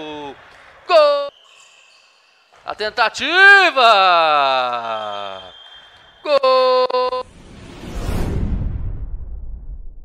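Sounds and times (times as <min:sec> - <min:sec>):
rising whoosh: 0:07.3 - 0:10.0.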